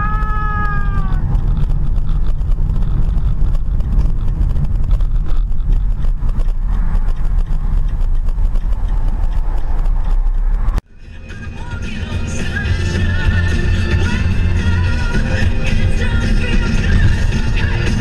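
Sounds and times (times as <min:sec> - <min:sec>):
car road and engine rumble: 0:00.0 - 0:18.0.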